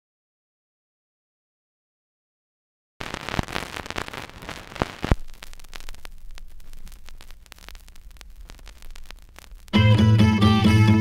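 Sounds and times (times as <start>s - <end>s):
vinyl record crackle and pops: 3.0s - 11.0s
music: 9.7s - 11.0s.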